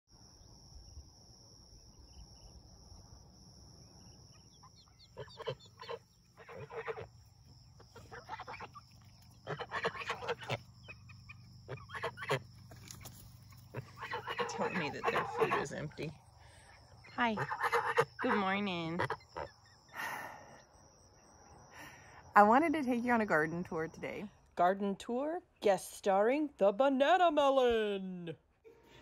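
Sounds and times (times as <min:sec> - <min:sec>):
chickens clucking: 0:04.3 - 0:07.2, 0:07.8 - 0:16.2, 0:17.2 - 0:19.6.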